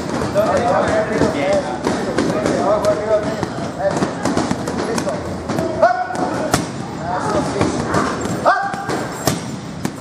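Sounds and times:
gloved punches on heavy bag: 0:07.6 - 0:10.0.

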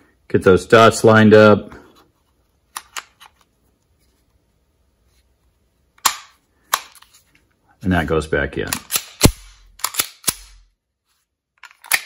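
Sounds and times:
pistol clicking during reassembly: 0:06.0 - 0:07.0, 0:08.7 - 0:10.7, 0:11.6 - 0:12.0.

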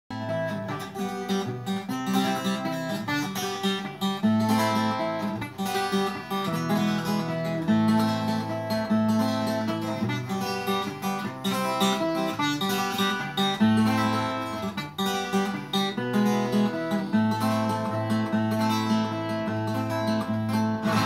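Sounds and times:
acoustic guitar strummed: 0:00.1 - 0:21.0.

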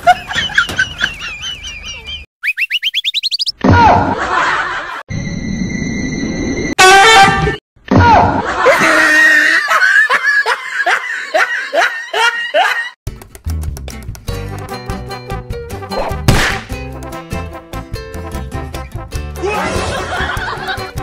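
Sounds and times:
laugh track: 0:00.0 - 0:02.3, 0:03.8 - 0:05.0, 0:08.1 - 0:13.0, 0:19.4 - 0:21.0.

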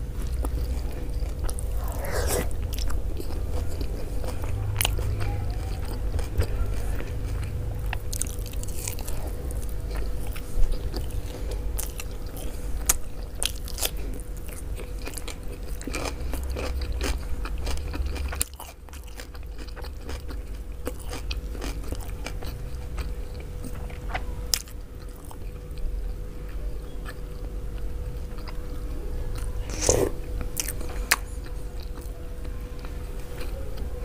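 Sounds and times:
faint steady hum: 0:00.0 - 0:34.0
person chewing with mouth clicks: 0:00.2 - 0:28.6, 0:29.3 - 0:33.6.

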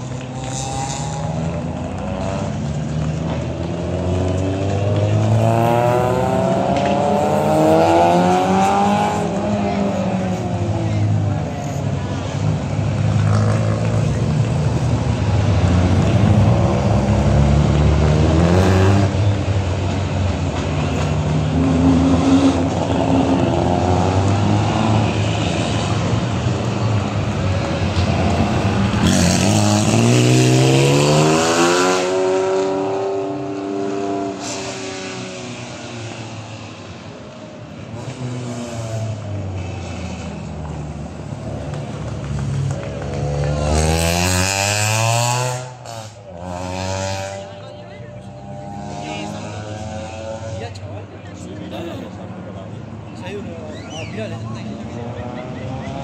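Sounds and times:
rally car engines revving: 0:00.0 - 0:56.0.

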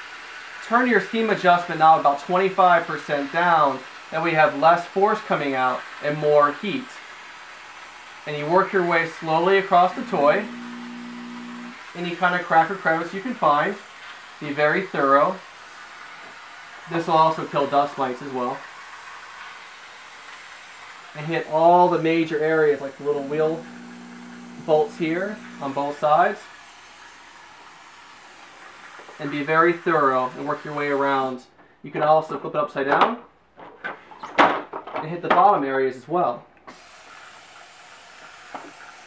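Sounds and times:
steamer hissing: 0:00.0 - 0:31.3, 0:36.7 - 0:39.0.

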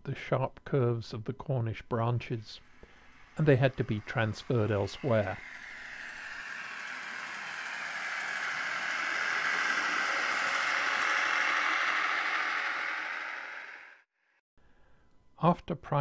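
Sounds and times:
train passing: 0:02.3 - 0:14.0.

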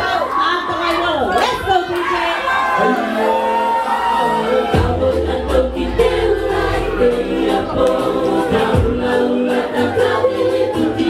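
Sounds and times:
women singing in harmony: 0:04.0 - 0:11.0.

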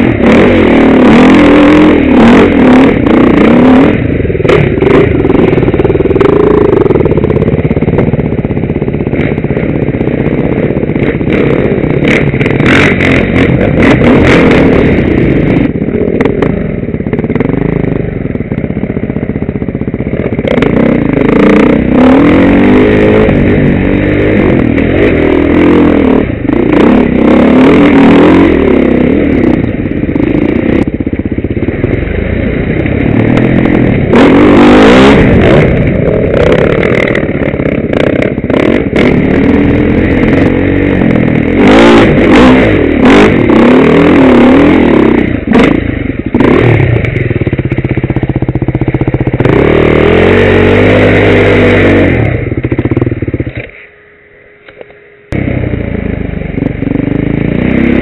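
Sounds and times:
dirt bike engine revving: 0:00.0 - 0:53.9, 0:55.3 - 0:58.0.

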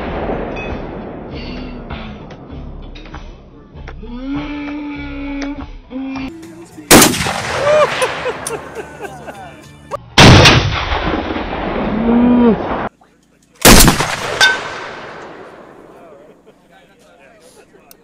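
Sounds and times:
rifle shots with long echo: 0:00.0 - 0:01.4, 0:06.9 - 0:08.5, 0:10.2 - 0:12.0, 0:13.6 - 0:16.0.

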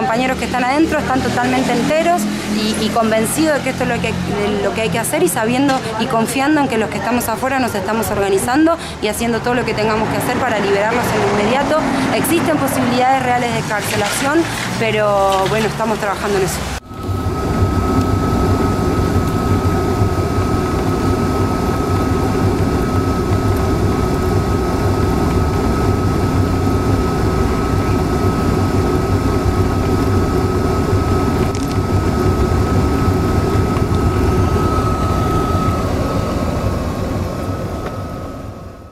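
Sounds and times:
engine and road rumble: 0:00.0 - 0:38.9
high-pitched whine: 0:00.0 - 0:38.9.

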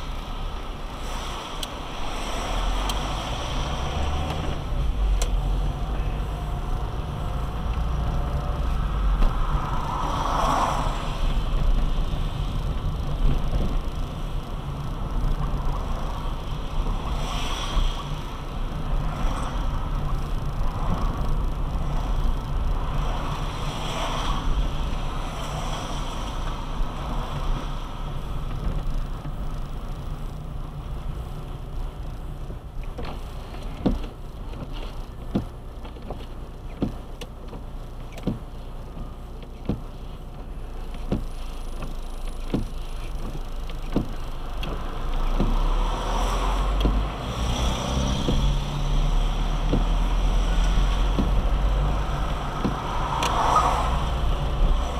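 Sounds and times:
tyre hiss on wet road: 0:00.0 - 0:04.3, 0:08.7 - 0:13.0, 0:14.1 - 0:20.4, 0:39.8 - 0:54.9
car engine and road rumble: 0:00.0 - 0:54.9.

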